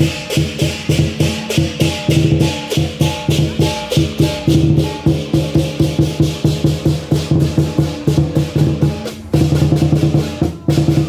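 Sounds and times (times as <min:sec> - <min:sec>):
cymbals ringing: 0:00.0 - 0:11.0
gong: 0:00.0 - 0:11.0
lion drum beat: 0:00.0 - 0:11.0.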